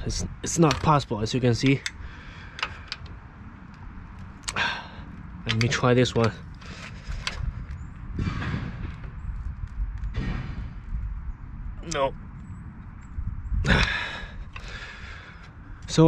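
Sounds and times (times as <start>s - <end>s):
man breathing heavily with effort: 1.9s - 3.6s, 4.4s - 5.4s, 6.5s - 9.2s, 13.6s - 15.9s.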